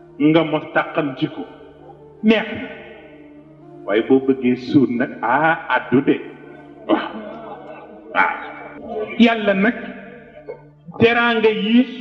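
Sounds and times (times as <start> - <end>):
man's drawn-out vocal sound: 6.6 - 9.3.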